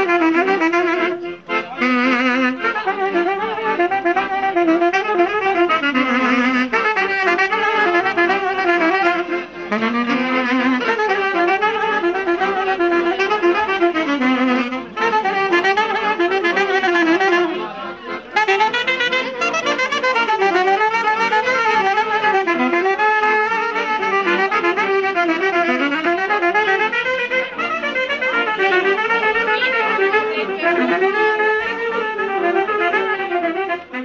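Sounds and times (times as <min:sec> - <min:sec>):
folk melody on reed wind instrument: 0:00.0 - 0:34.0.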